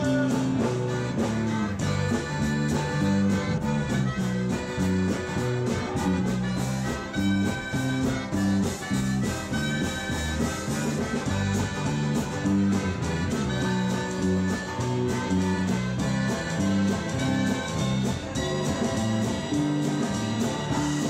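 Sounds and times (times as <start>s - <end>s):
harmonica lead: 0.0s - 21.0s
live band playing: 0.0s - 21.0s.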